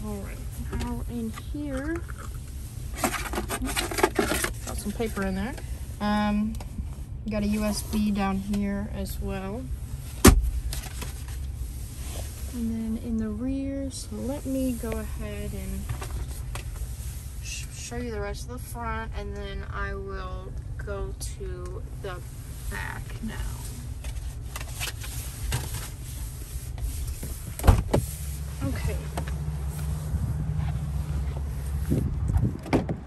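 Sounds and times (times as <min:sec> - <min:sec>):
steady low rumble: 0:00.0 - 0:33.0
phone rubbing and rustling: 0:00.6 - 0:05.6, 0:23.3 - 0:32.6
armrest lid thump: 0:27.6 - 0:28.1.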